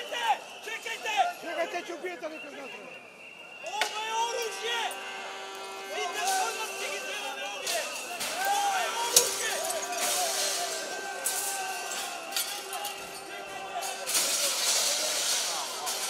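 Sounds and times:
crowd shouting: 0:00.0 - 0:16.0
glass crashing: 0:06.2 - 0:16.0.

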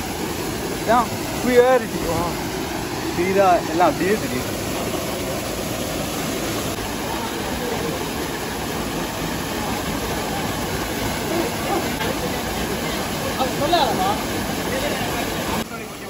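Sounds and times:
waterfall pouring into pool: 0:00.0 - 0:16.0.

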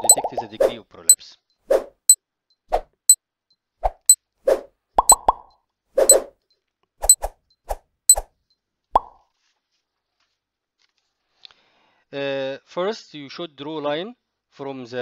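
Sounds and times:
high timer ticks: 0:00.0 - 0:00.4, 0:05.0 - 0:05.5.

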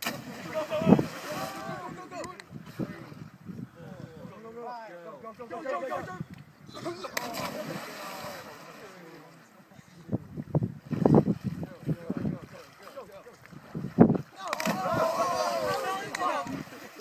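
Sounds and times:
wind rumbling on microphone: 0:00.2 - 0:04.5, 0:10.0 - 0:12.6, 0:13.4 - 0:16.8
young people shouting: 0:00.5 - 0:02.2, 0:14.4 - 0:16.7.

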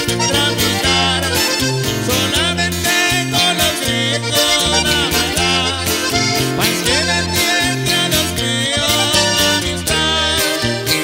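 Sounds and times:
acoustic guitar: 0:00.0 - 0:11.0
button accordion: 0:00.0 - 0:11.0
electric bass line: 0:00.0 - 0:11.0.

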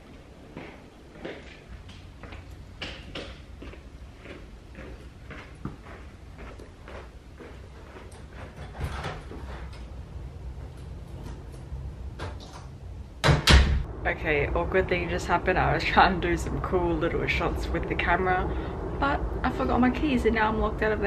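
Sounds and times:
loud knock: 0:13.2 - 0:13.9.

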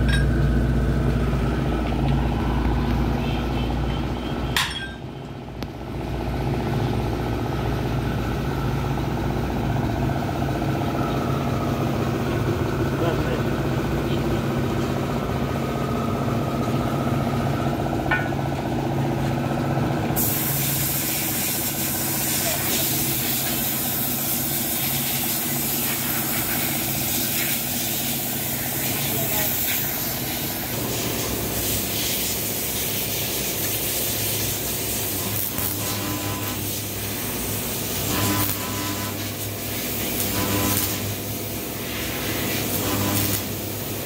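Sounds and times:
low machine hum: 0:00.0 - 0:20.4
loud steady hiss: 0:20.2 - 0:44.0.

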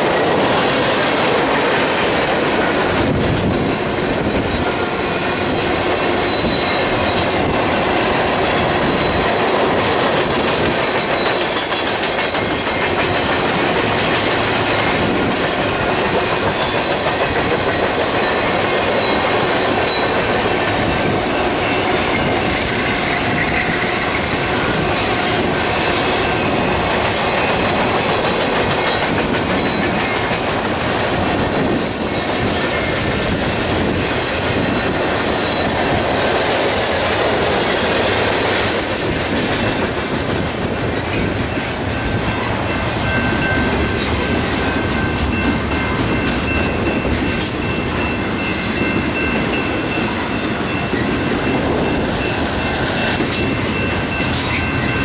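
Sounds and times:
train wheels clattering on rail: 0:00.0 - 0:55.0
high wheel squeal: 0:05.4 - 0:07.6, 0:08.4 - 0:14.1, 0:17.2 - 0:20.2, 0:20.8 - 0:37.0.

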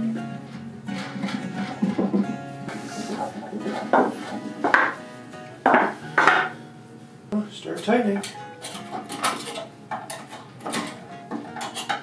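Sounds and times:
metallic clinks and rattles: 0:08.2 - 0:11.0.

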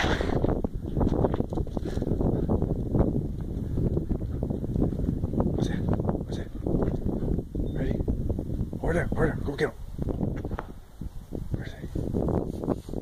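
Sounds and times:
wind buffeting microphone: 0:00.0 - 0:13.0
microphone handling knocks: 0:10.0 - 0:10.8.

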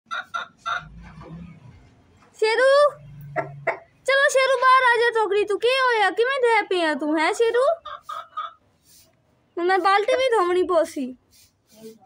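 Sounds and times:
rooster clucking: 0:00.1 - 0:01.3, 0:03.0 - 0:04.0, 0:07.2 - 0:09.0.

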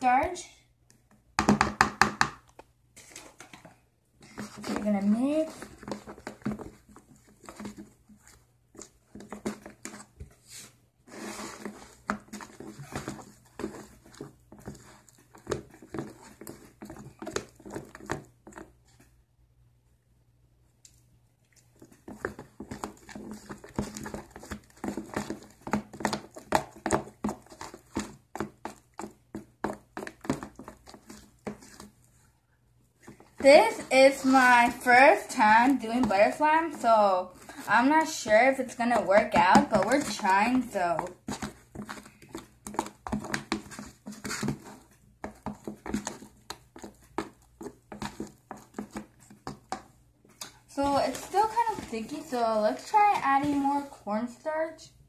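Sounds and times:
plastic spoon stirring thick mix: 0:00.0 - 0:19.6, 0:20.6 - 0:55.0.

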